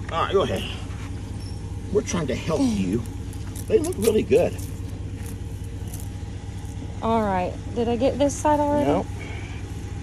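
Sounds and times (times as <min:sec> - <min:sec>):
truck engine idling: 0:00.0 - 0:10.0.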